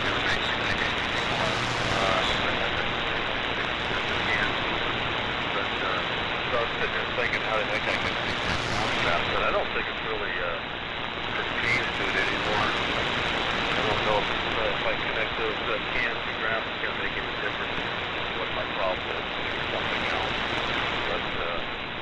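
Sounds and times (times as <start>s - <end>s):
weak radio voice: 0.0s - 4.9s, 5.5s - 21.8s
radio static: 0.0s - 22.0s.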